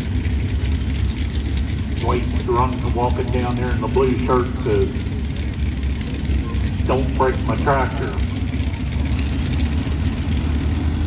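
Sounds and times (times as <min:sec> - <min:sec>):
tractor engines idling: 0:00.0 - 0:11.0.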